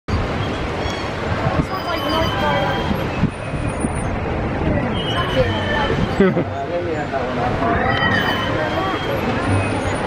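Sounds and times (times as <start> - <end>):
voices: 1.4 - 3.1, 4.4 - 10.0
high electronic tones: 7.7 - 10.0.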